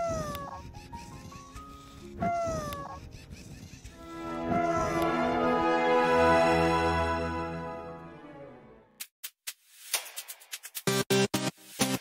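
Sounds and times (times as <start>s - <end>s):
background music: 3.9s - 9.0s.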